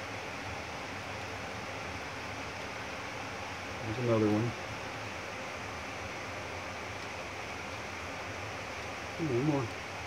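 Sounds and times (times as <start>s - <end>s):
outdoor ambient hiss: 0.0s - 10.0s.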